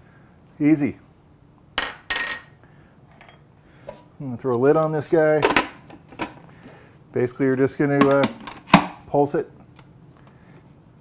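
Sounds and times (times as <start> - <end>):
kitchenware clinking down: 1.8 - 2.6.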